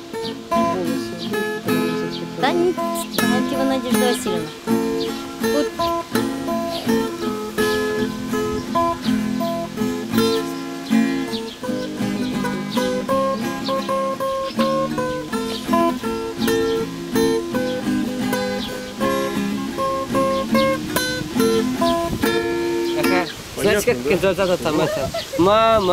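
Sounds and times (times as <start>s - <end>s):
acoustic guitar picking: 0.0s - 25.9s.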